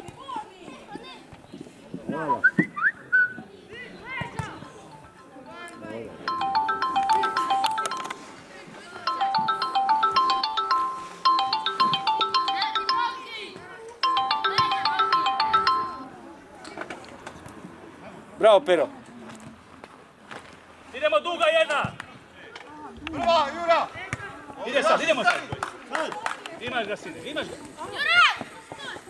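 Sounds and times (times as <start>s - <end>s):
phone ringtone tune: 4.6s - 16.2s.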